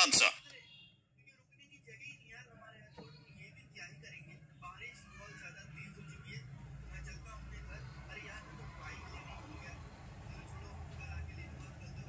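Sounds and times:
distant voices talking: 2.7s - 12.0s.

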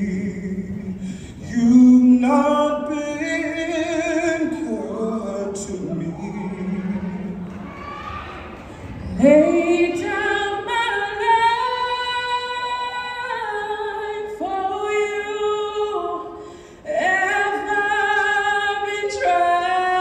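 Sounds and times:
choir singing a cappella: 9.1s - 20.0s.

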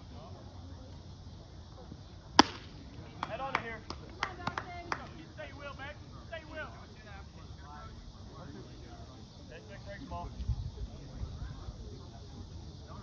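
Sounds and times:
baseball sharp crack: 2.3s - 5.1s
hand claps: 3.2s - 5.1s.

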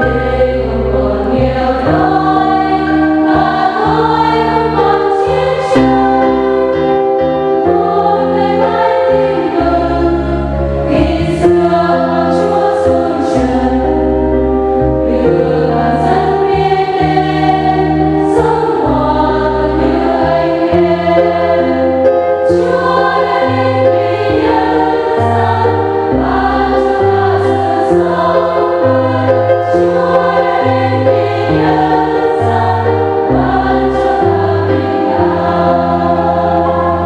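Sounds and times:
choir singing in harmony: 0.0s - 37.0s.

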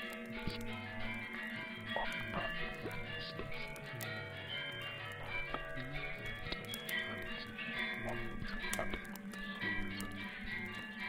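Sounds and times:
held chiming tones: 0.0s - 11.0s
low drone: 0.0s - 11.0s.

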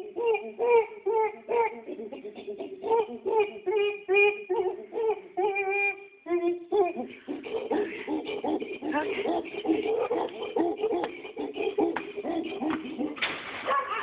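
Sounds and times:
chimpanzee hooting: 0.0s - 14.0s.

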